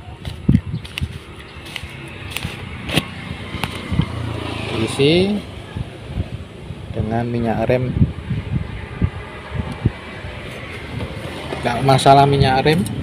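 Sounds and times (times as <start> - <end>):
low hum with rising tone: 0.0 - 11.6.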